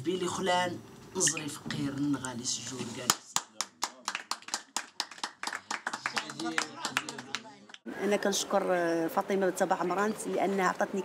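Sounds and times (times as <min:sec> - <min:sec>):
group clapping in rhythm: 0:03.0 - 0:07.8.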